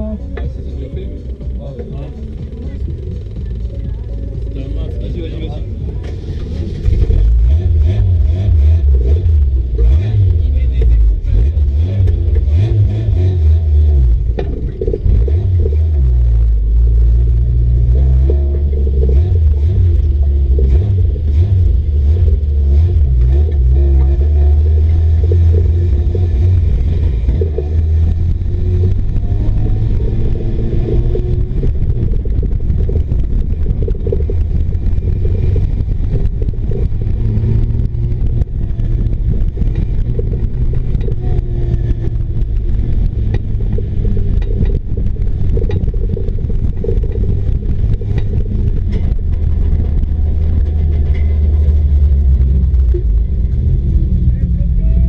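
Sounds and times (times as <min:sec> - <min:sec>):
race car engine rumble: 0:00.0 - 0:55.0.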